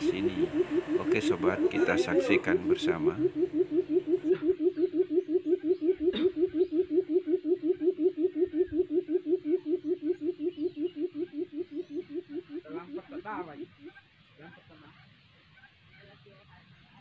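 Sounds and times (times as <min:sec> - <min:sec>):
bird booming hoots: 0:00.0 - 0:14.8.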